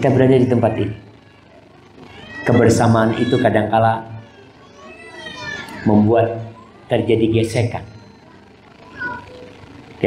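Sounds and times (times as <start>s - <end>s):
person lecturing: 2.4s - 4.2s
faint young child's voice: 4.1s - 5.9s, 8.1s - 9.6s.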